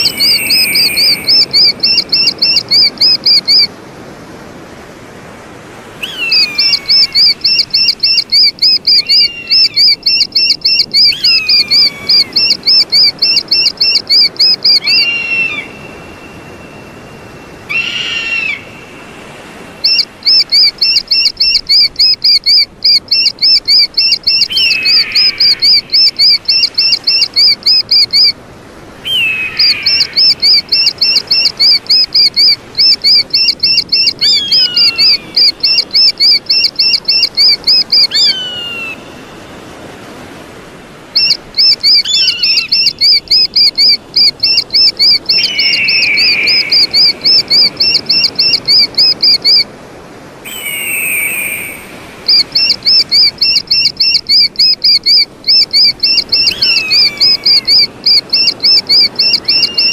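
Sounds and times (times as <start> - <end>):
eagle shrill chirps: 0.0 - 3.7, 6.0 - 16.6, 17.7 - 18.8, 19.8 - 28.4, 29.0 - 39.1, 41.2 - 49.6, 50.5 - 59.9
eagle lower slurred call: 6.0 - 16.1, 19.8 - 28.4, 29.0 - 39.1, 41.2 - 49.6, 50.5 - 59.9.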